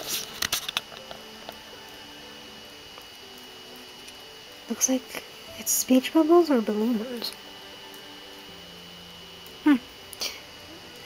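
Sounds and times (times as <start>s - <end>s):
faint high whine: 0.0s - 11.0s
steady hiss: 0.0s - 11.0s.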